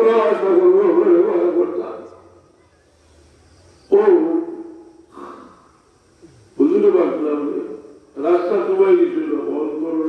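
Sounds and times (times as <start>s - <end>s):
man chanting a held note: 3.9s - 4.8s.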